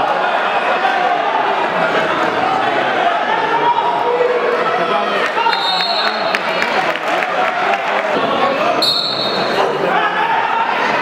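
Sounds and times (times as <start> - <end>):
spectators talking in arena: 0.0 - 11.0
high whistle blast: 8.8 - 9.6.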